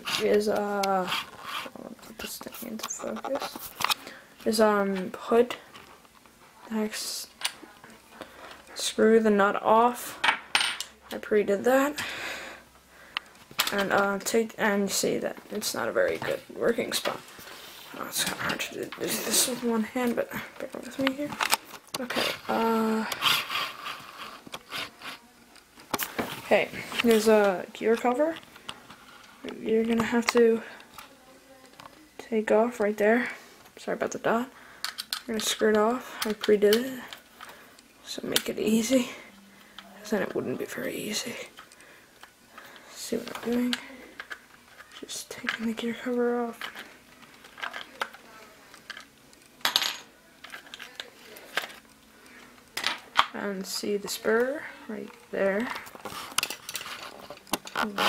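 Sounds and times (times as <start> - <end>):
plastic toy car parts scraping: 1.0 - 1.8, 21.2 - 25.2, 55.6 - 58.0.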